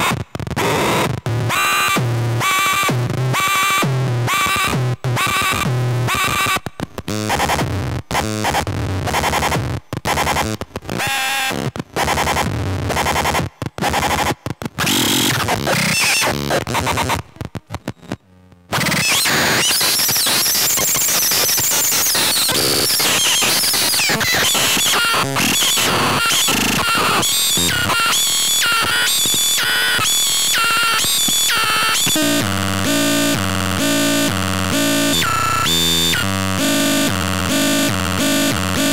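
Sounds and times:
glitchy electronic tones: 0:13.8 - 0:38.9
buzzy electronic tones stepping pitch: 0:30.1 - 0:38.9.

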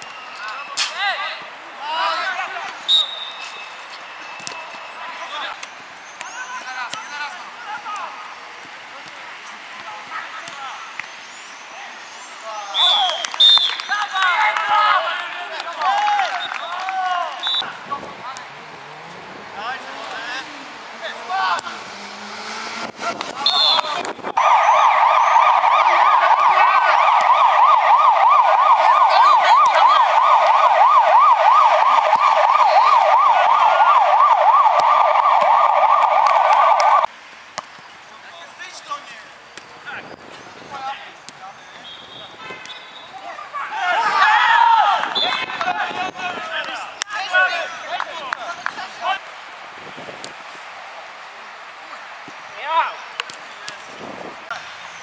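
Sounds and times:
bursts of voices: 0:00.4 - 0:03.0, 0:11.7 - 0:37.1, 0:42.2 - 0:49.4.

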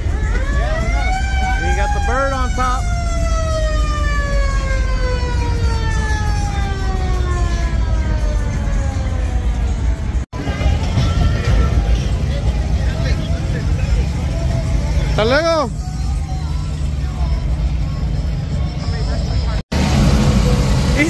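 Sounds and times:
idling car engines rumbling: 0:00.0 - 0:21.0
music: 0:03.4 - 0:19.6
scattered voices: 0:10.4 - 0:19.6.

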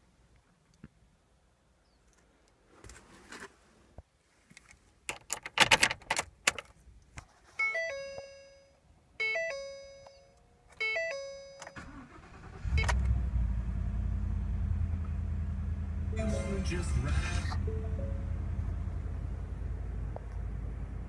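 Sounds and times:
dashboard warning chimes: 0:07.6 - 0:13.0, 0:16.2 - 0:18.8
car engine cranking and idling: 0:11.6 - 0:21.0.

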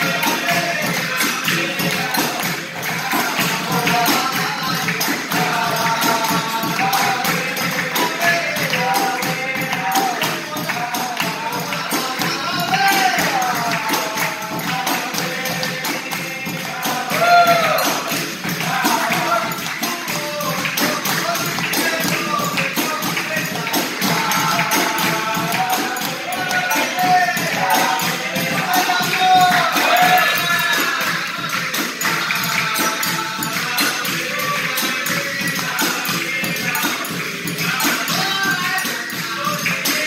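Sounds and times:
hand clapping: 0:00.0 - 0:40.0
hand drum: 0:00.0 - 0:40.0
jingling tambourine: 0:00.0 - 0:40.0
voices singing: 0:00.0 - 0:40.0.

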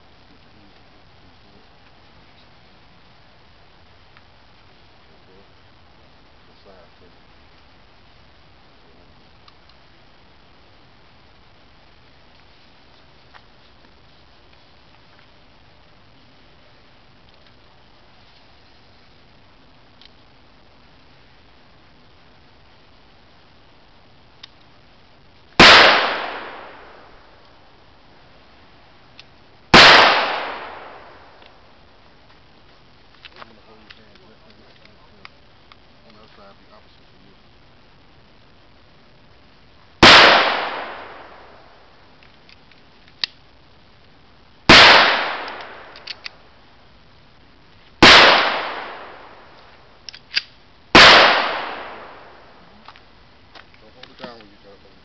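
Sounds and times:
faint clicks: 0:24.3 - 0:24.8, 0:42.1 - 0:43.5, 0:45.4 - 0:46.4
handgun shots with echo: 0:25.6 - 0:27.0, 0:29.8 - 0:31.1, 0:40.0 - 0:41.3, 0:44.7 - 0:46.2, 0:51.0 - 0:52.2.

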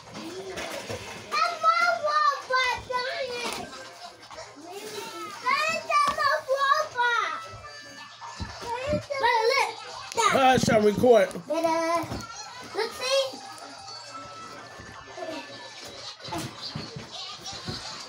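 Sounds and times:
children talking and calling out: 0:00.0 - 0:18.0.

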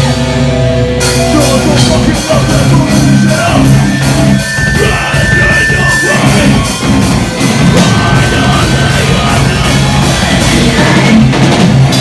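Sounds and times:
bass guitar: 0:00.0 - 0:12.0
distorted electric guitars: 0:00.0 - 0:12.0
pounding drums: 0:01.1 - 0:12.0.

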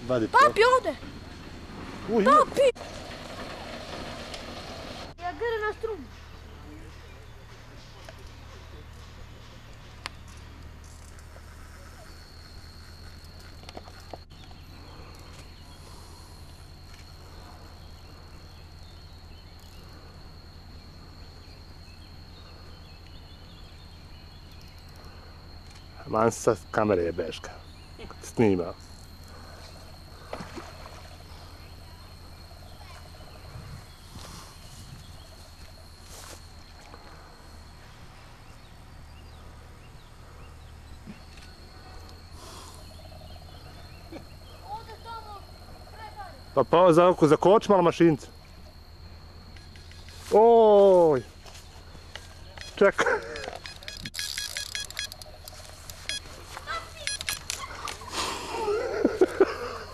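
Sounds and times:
electronic bite alarm beeping: 0:52.6 - 0:56.4, 0:57.0 - 0:57.5.

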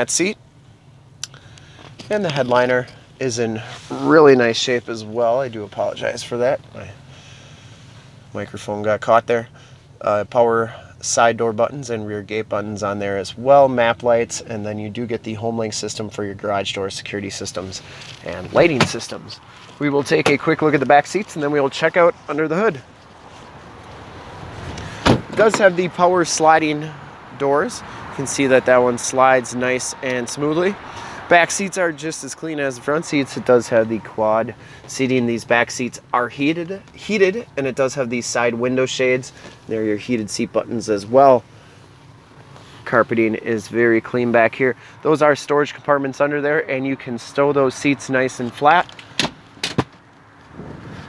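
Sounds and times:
faint rustling: 0:17.5 - 0:26.4
wind buffeting microphone: 0:50.5 - 0:51.0.

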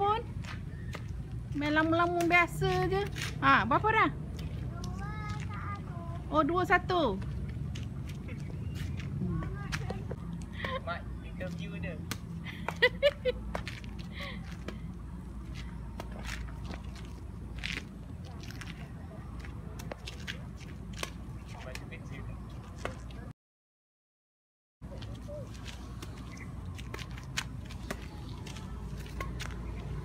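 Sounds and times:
children's voices: 0:04.5 - 0:06.3.

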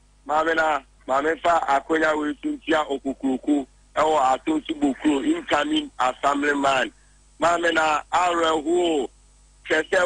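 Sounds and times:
person talking rapidly: 0:00.3 - 0:09.1.

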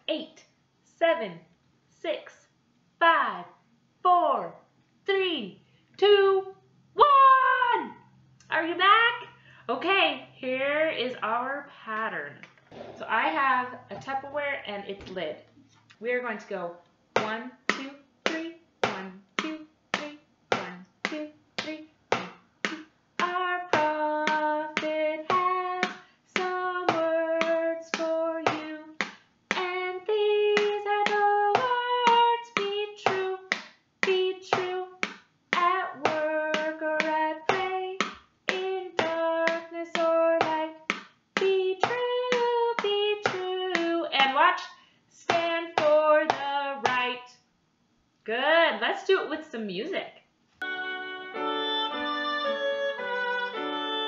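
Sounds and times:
woman singing: 0:17.2 - 0:21.9, 0:22.7 - 0:35.0, 0:35.6 - 0:47.3.

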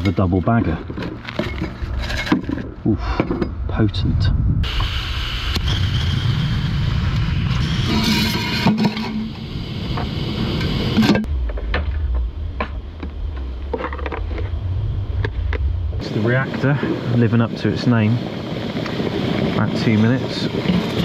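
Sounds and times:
stove low rumble: 0:00.0 - 0:21.0
gas stove hissing: 0:04.6 - 0:11.3.

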